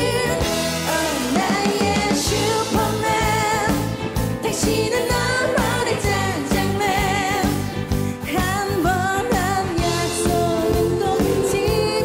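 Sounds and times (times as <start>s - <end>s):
woman singing: 0.0s - 12.0s
band with steady beat: 9.3s - 12.0s.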